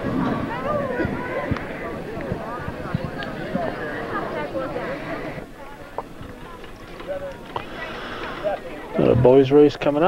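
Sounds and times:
distant people talking: 0:00.0 - 0:10.0.

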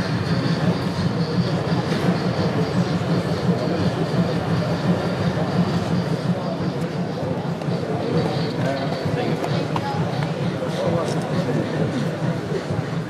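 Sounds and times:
model tram rolling rumble: 0:00.0 - 0:13.0.

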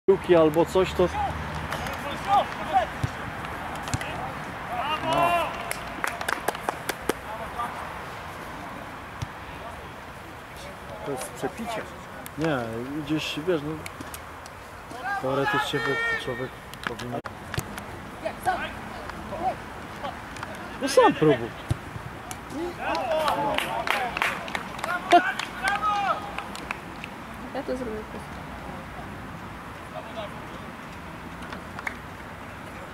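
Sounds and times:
men shouting and cheering: 0:01.0 - 0:06.6, 0:14.9 - 0:16.6, 0:18.2 - 0:26.6
sharp hand claps: 0:05.5 - 0:07.2, 0:22.2 - 0:27.2, 0:31.7 - 0:32.0.

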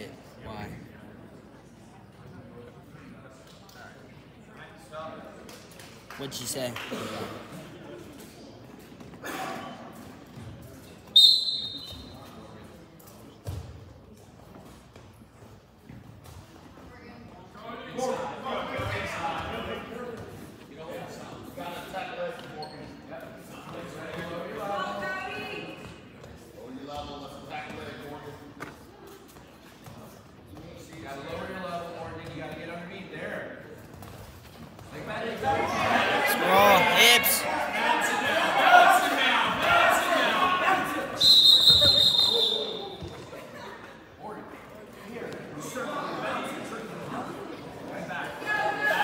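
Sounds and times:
background talk: 0:00.0 - 0:49.0
referee's whistle: 0:11.1 - 0:12.2, 0:41.2 - 0:43.0
people shouting: 0:35.8 - 0:37.4
person calling out: 0:36.3 - 0:37.4.

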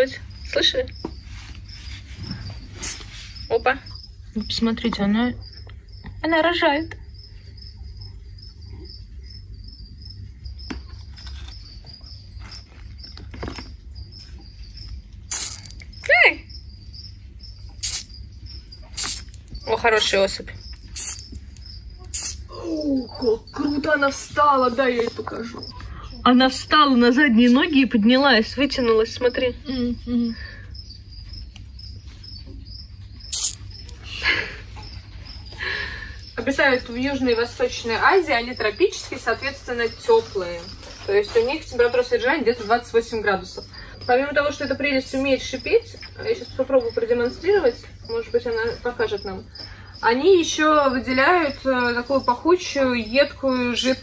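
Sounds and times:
cricket chirping: 0:00.0 - 0:54.0
short sharp hiss: 0:02.8 - 0:03.3, 0:15.3 - 0:15.7, 0:17.8 - 0:18.1, 0:19.0 - 0:19.4, 0:21.0 - 0:21.3, 0:22.1 - 0:22.4, 0:33.3 - 0:33.6.

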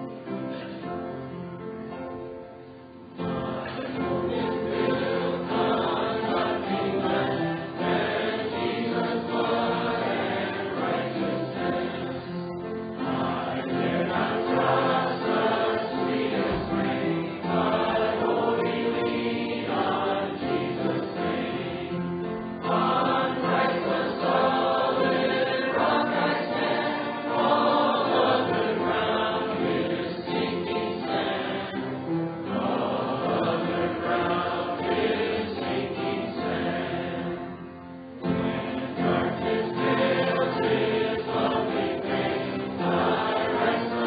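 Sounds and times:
congregation singing a hymn: 0:00.0 - 0:02.0, 0:02.7 - 0:44.0.

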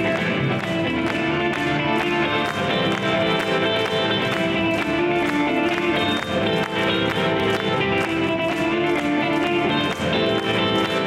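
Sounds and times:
acoustic guitar: 0:00.0 - 0:11.0
bass guitar: 0:00.0 - 0:11.0
cajon tapping beat: 0:00.0 - 0:11.0
electric guitar lead: 0:00.0 - 0:11.0.

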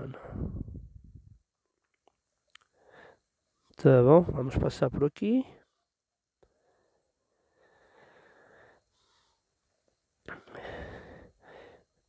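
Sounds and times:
faint breathing close to microphone: 0:00.0 - 0:01.2, 0:02.7 - 0:03.8, 0:05.5 - 0:09.7, 0:10.3 - 0:12.0.

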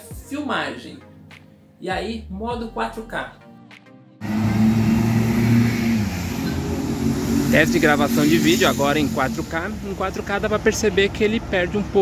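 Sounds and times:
street traffic: 0:04.2 - 0:12.0
vehicle engine hum: 0:04.2 - 0:12.0.

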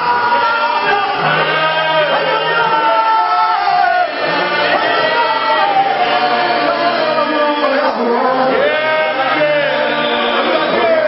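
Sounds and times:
men singing gospel song: 0:00.0 - 0:11.0.

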